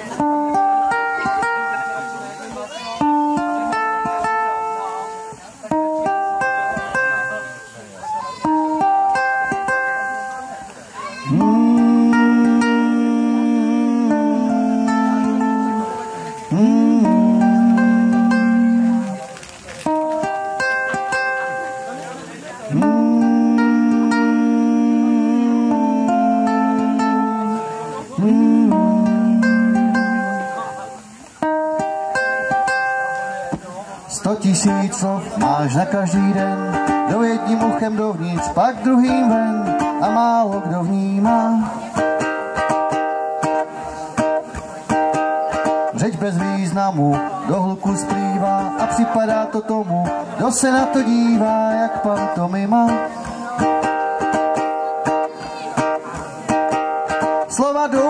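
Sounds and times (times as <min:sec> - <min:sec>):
wordless sliding melody notes: 0:00.0 - 0:34.0, 0:34.6 - 0:58.0
ukulele plucking a melody: 0:00.0 - 0:58.0.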